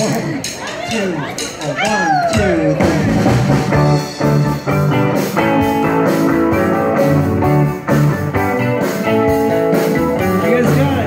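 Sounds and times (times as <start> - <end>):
rock and roll band playing: 0.0 - 11.0.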